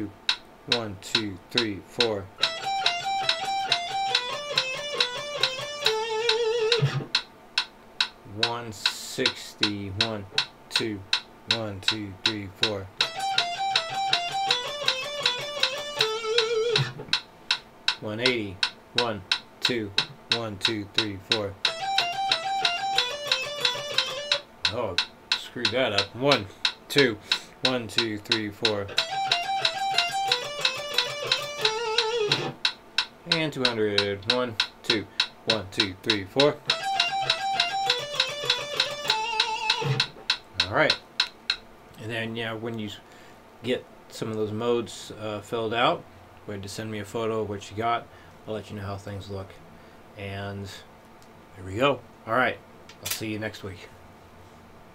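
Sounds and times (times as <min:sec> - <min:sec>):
metronome clicking: 0:00.0 - 0:41.6
electric guitar phrase: 0:02.4 - 0:07.0, 0:13.0 - 0:17.0, 0:21.7 - 0:24.4, 0:28.9 - 0:32.6, 0:36.6 - 0:40.1.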